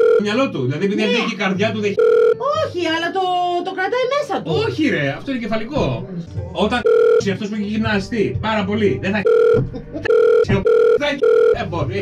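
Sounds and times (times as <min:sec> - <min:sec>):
censor bleeps: 0:02.0 - 0:02.4, 0:06.8 - 0:07.2, 0:09.2 - 0:11.6
man speaking: 0:10.4 - 0:11.8.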